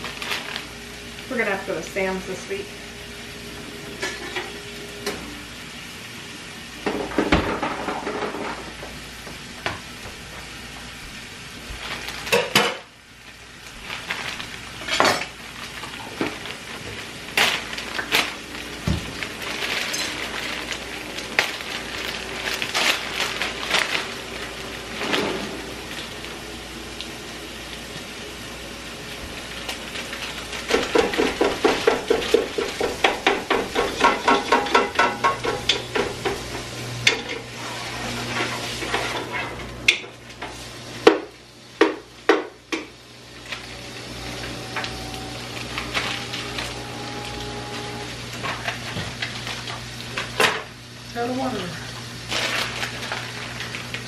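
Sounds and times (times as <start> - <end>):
food sizzling in a frying pan: 0.0 - 54.0
utensils clinking on plates: 4.0 - 4.6.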